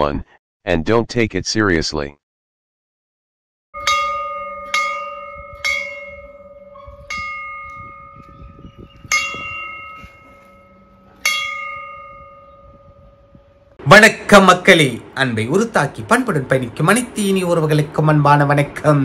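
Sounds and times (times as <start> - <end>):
metal bell ringing: 3.8 - 13.7.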